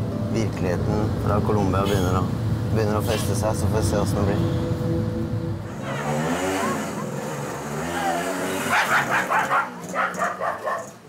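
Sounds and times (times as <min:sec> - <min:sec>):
music with gliding melody: 0:00.0 - 0:07.7
dog barking: 0:08.6 - 0:11.0.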